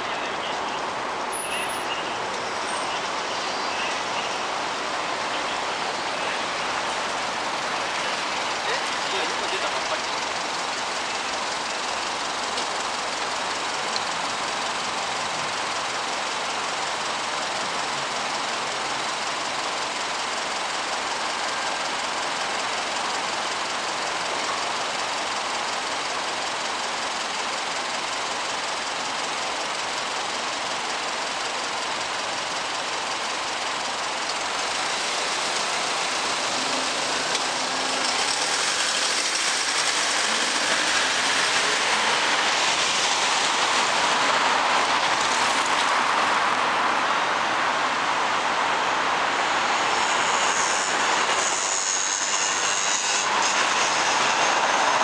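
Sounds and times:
engines idling: 0.0 - 55.0
road din: 0.0 - 55.0.

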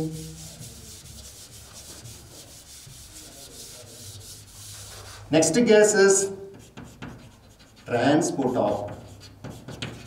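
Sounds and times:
duster rubbing on chalkboard: 0.0 - 5.4, 6.5 - 10.0.

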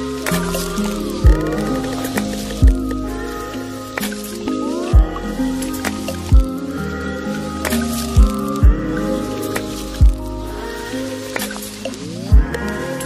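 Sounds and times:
sliding stepping music tones: 0.0 - 12.8
low drone: 0.0 - 13.0
deep bass hits: 1.1 - 3.2.

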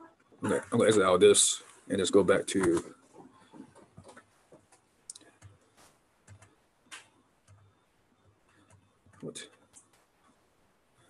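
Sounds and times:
keyboard and mouse clicks: 3.5 - 5.6, 6.2 - 7.7, 8.5 - 10.1.

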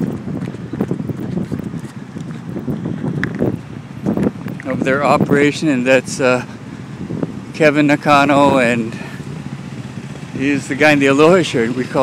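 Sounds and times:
wind on microphone: 0.0 - 9.4.

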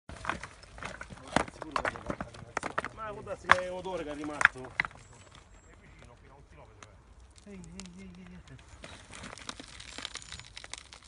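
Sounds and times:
rubble knocking and clattering: 0.1 - 5.5, 8.6 - 11.0.

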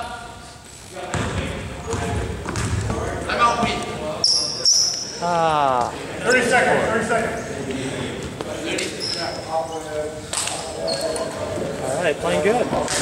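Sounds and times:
basketball bouncing on hardwood: 1.1 - 2.9
sneaker squeaks: 4.2 - 5.2, 8.8 - 10.0, 10.7 - 11.4.

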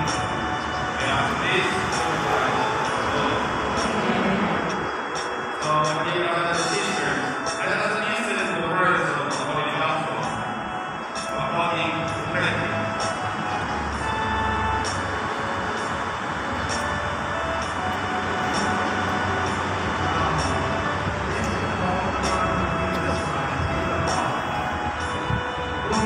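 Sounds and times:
large crowd voices: 0.0 - 26.0.

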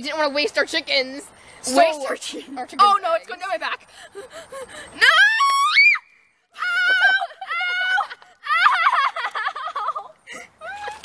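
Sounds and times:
girl shrieking: 5.0 - 9.1.

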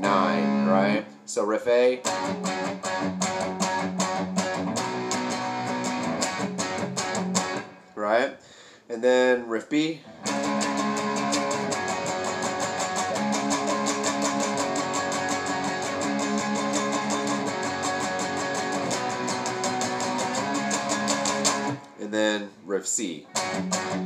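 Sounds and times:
electric guitar power-chord riff: 0.0 - 1.0, 2.0 - 7.9, 10.1 - 22.0, 23.3 - 24.0.

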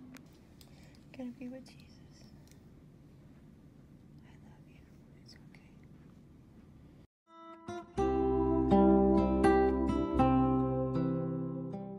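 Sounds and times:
faint whispering: 1.1 - 2.4, 4.2 - 6.0.

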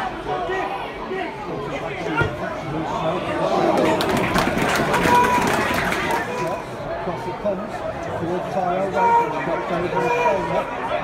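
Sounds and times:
spectators talking: 0.0 - 11.0.

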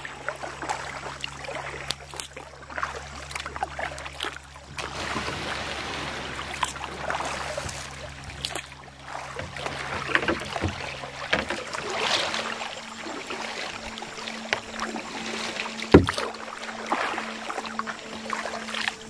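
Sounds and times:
paddles splashing: 0.0 - 19.0
stream water running: 0.0 - 19.0.

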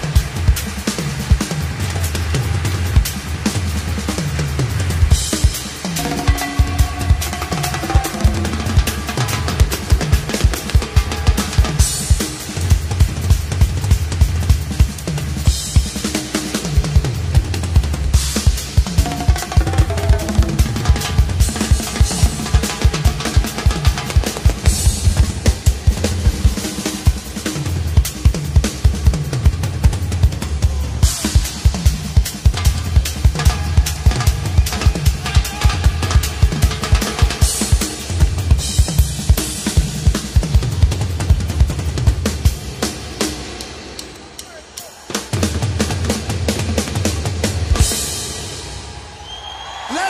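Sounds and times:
timbales and congas: 0.0 - 43.3
drum kit: 0.0 - 50.0.

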